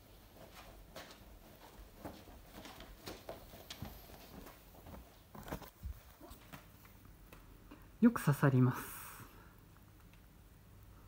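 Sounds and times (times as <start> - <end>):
soft footsteps on mats: 0.0 - 7.9.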